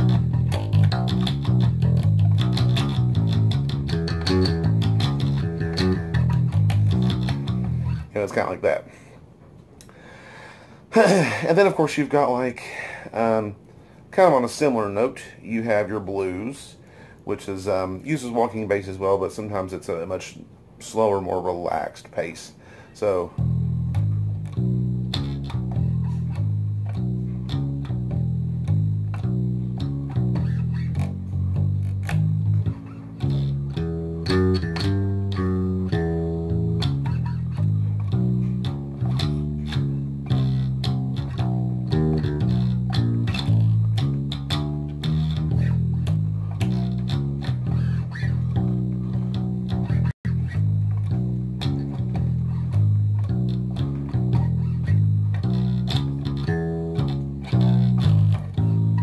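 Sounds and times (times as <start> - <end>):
electric bass walking line: 0.0 - 8.8, 23.1 - 59.0.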